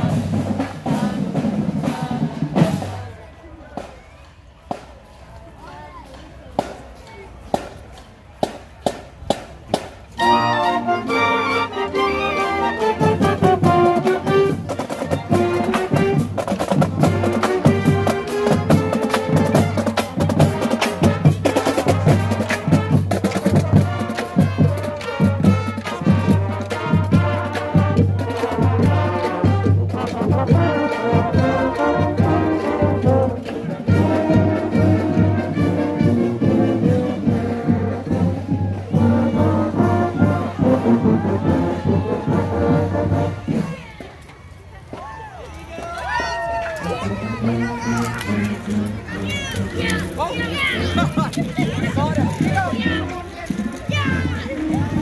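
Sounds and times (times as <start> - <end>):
steady drum beat: 0.0 - 3.9, 12.6 - 44.0, 48.3 - 55.0
saxophones and clarinets: 10.1 - 16.4, 17.0 - 43.7, 46.8 - 52.0
sousaphones and trumpets: 10.1 - 16.4, 17.0 - 43.6.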